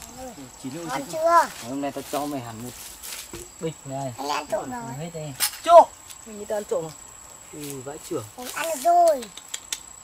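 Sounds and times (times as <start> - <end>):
voices talking: 0.0 - 9.8.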